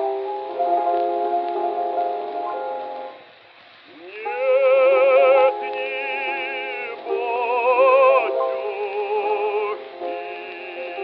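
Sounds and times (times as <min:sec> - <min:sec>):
operatic bass voice singing: 0:04.0 - 0:11.0.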